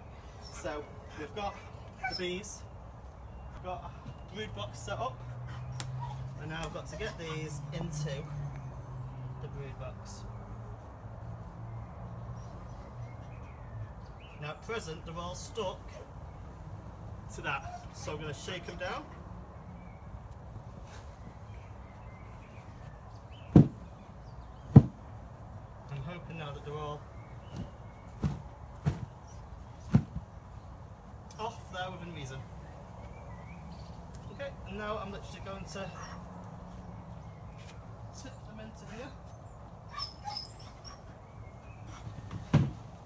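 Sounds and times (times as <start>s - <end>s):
sharp thumps of jolted sheet: 23.5s - 23.8s, 24.7s - 25.0s, 27.5s - 29.1s.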